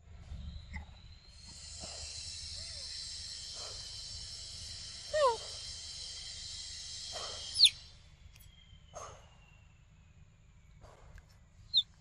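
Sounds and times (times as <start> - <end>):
high insect chorus: 0.3 - 8.9.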